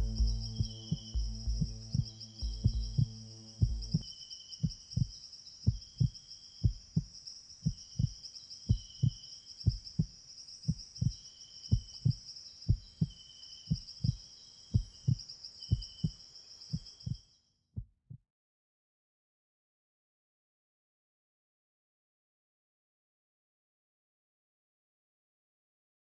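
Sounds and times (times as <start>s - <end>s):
heartbeat thumps: 0.0s - 4.0s, 4.6s - 17.2s
steady high buzz: 0.0s - 4.0s.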